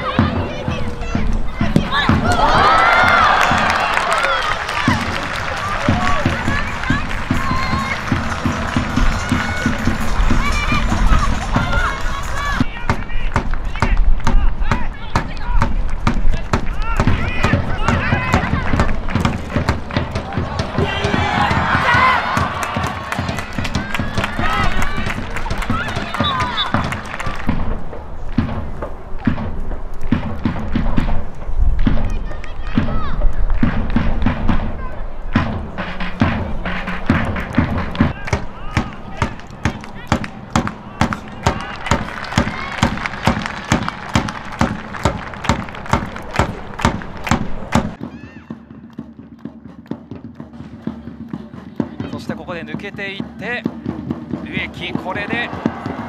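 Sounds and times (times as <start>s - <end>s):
voices: 0.0s - 27.4s.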